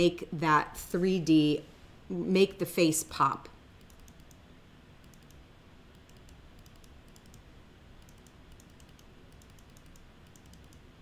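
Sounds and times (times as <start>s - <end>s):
computer keyboard and mouse clicking: 3.8s - 4.4s, 5.0s - 10.9s.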